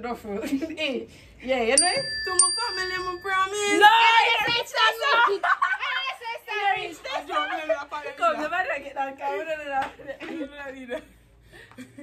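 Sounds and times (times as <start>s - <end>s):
high bell-like ding: 1.8s - 4.1s.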